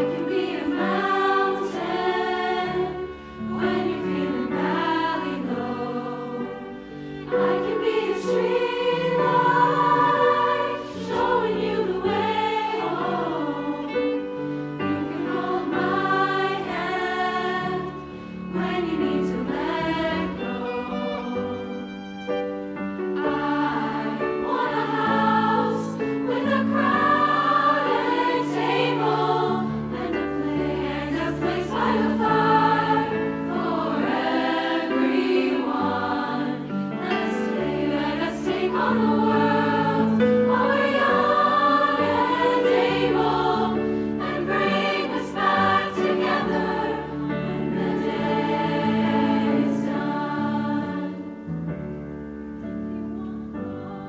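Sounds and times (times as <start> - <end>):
choir singing in harmony: 0.0 - 52.0.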